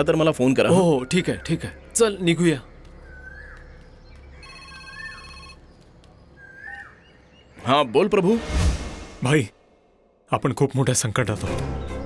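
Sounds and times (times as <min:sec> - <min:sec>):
bird chirp: 0:00.0 - 0:08.2
phone ringtone chord: 0:04.4 - 0:05.6.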